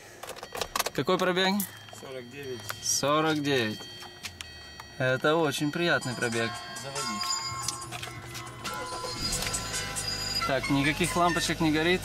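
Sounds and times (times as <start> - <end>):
car engine starting and idling: 0.0 - 12.0
music: 6.0 - 11.6.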